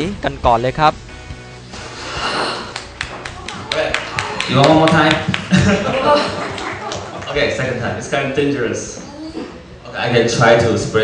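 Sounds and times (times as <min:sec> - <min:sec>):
breathy vapour hiss: 0:01.6 - 0:03.0
audience clapping: 0:02.6 - 0:07.9.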